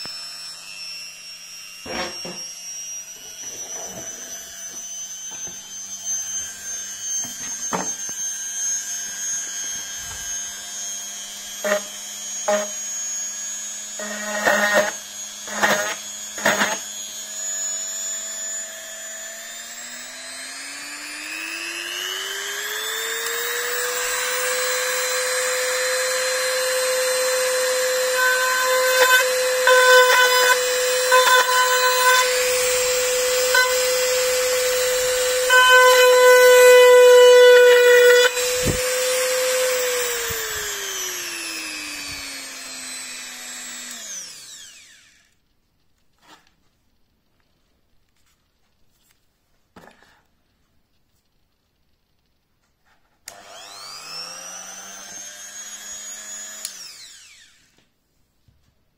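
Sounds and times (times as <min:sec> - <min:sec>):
drill bit boring into wood: 0:00.0 - 0:45.4, 0:53.3 - 0:57.8
rotary tool whining: 0:00.0 - 0:45.5, 0:53.3 - 0:57.9.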